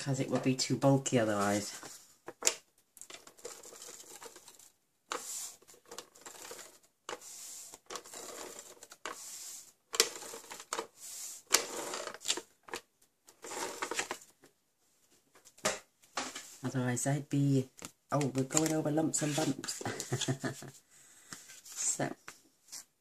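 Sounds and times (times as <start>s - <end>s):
tape gun rattling and whirring: 11.5s - 12.5s.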